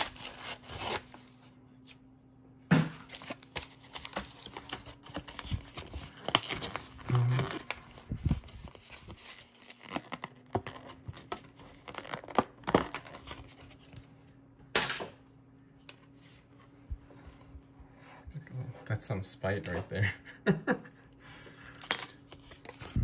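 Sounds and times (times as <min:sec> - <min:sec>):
cardboard tearing: 0:00.0 - 0:01.4, 0:03.1 - 0:13.9
plastic packaging crinkling: 0:03.1 - 0:13.8.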